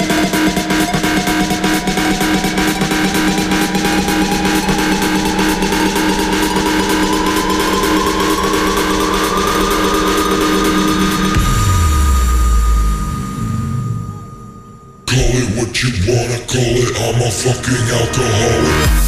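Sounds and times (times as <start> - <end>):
deep bass tone: 0.0 - 19.0.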